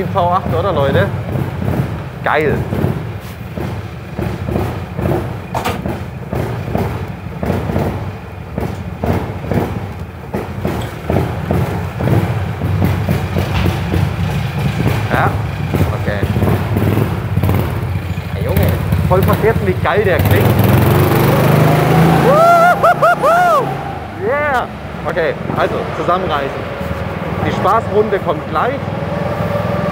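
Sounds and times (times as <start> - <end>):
go-kart engine rumbling: 0.0 - 29.9.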